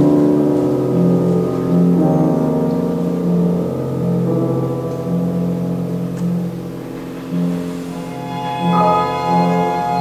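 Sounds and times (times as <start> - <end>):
piano quintet playing: 0.0 - 10.0.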